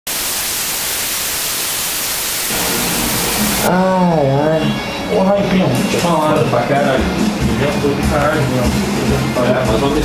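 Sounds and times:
television static hiss: 0.1s - 10.0s.

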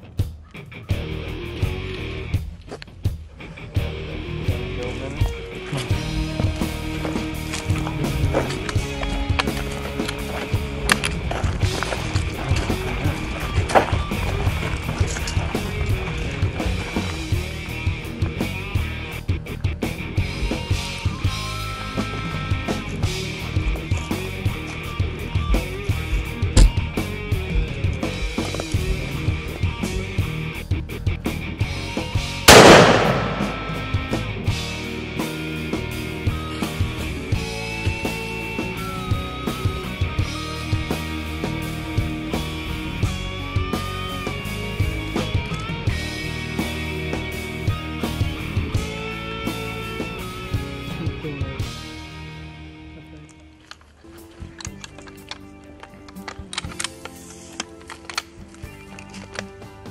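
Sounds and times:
background music with steady beat: 0.0s - 52.8s
rifle shot: 32.5s - 34.2s.

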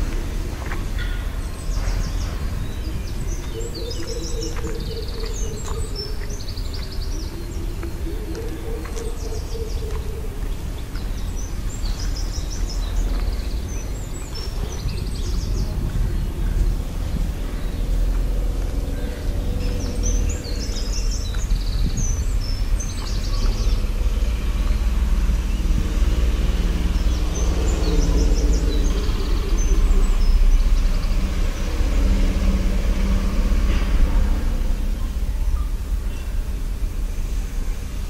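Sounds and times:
birds chirping: 0.0s - 38.0s
low outdoor rumble: 0.0s - 38.0s.

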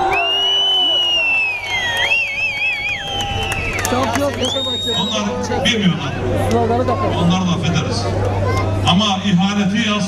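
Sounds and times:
shrill human whistle: 0.0s - 3.6s, 4.4s - 5.3s
crowd shouts: 0.0s - 5.6s.

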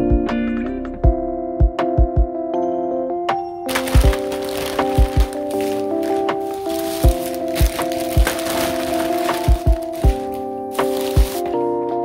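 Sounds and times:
background music with drum beat: 1.6s - 2.4s
plastic snack packets crinkling: 3.7s - 11.6s.

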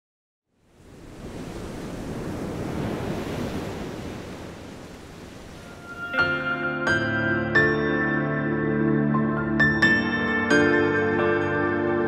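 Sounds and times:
rushing surf-like noise: 0.6s - 6.4s
music: 5.6s - 12.0s.

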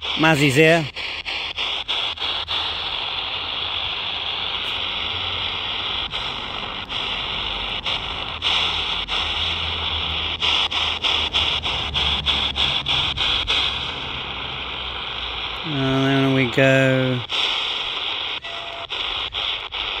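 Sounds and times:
radio static hiss: 0.0s - 20.0s.

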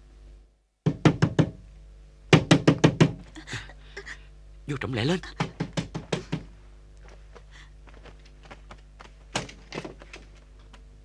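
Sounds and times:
knocking on wooden door: 0.8s - 1.6s, 2.3s - 3.2s, 5.4s - 6.5s.

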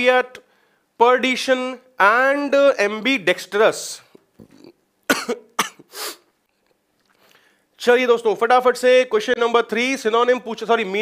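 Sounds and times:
man coughing: 4.4s - 6.2s
short breathy burst: 5.8s - 6.4s.

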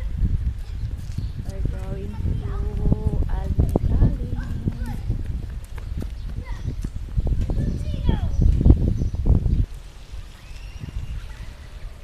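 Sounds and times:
wind rumble on microphone: 0.0s - 12.0s
footsteps on stone paving: 0.1s - 12.0s.

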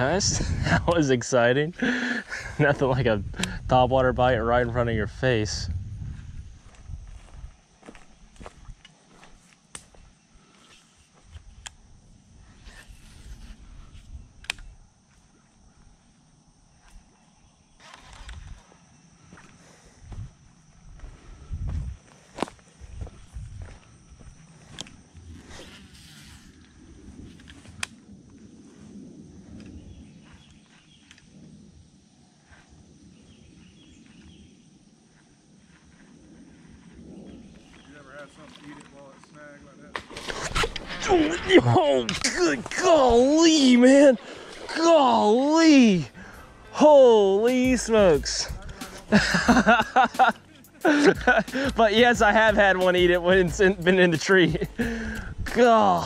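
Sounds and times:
steady high-pitched hum: 0.0s - 56.0s
footsteps through grass: 6.0s - 11.3s.

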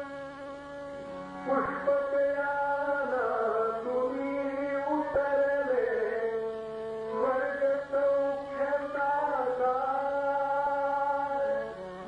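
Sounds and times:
devotional song singing: 0.0s - 12.0s
steady drone: 0.0s - 12.0s
tabla: 0.0s - 12.0s
violin: 0.0s - 12.0s.

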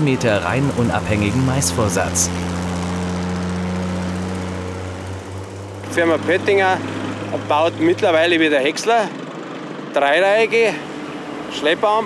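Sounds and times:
tractor diesel engine droning: 0.0s - 12.0s.

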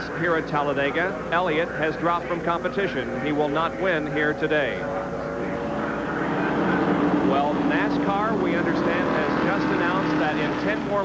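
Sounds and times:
race cars racing past: 5.0s - 11.0s.

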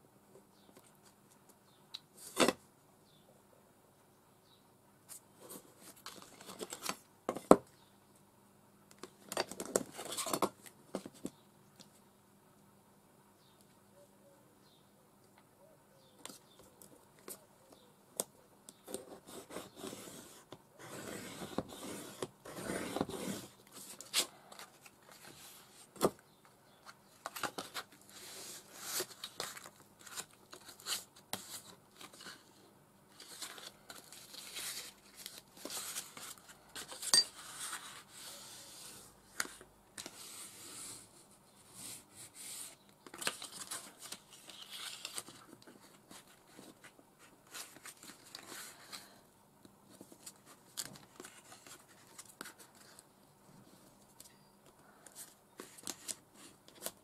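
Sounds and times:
card rustling and crinkling: 5.1s - 7.6s, 26.8s - 32.5s, 33.1s - 38.4s, 42.4s - 49.2s, 49.9s - 53.1s
bone folder scraping card: 18.9s - 25.6s.

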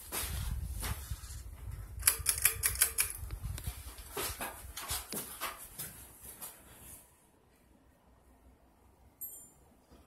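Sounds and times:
ceiling fan running: 0.0s - 10.0s
sharp light clicks: 2.0s - 3.4s.

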